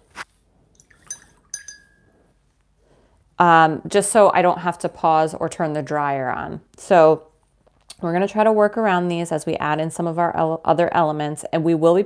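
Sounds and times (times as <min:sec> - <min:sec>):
paintbrush clinking on glass jar: 0:00.8 - 0:02.2.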